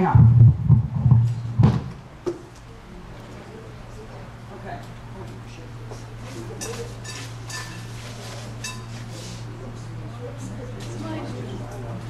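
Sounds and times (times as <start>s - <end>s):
steady low hum: 0.0s - 12.0s
tableware clinking: 6.6s - 9.1s.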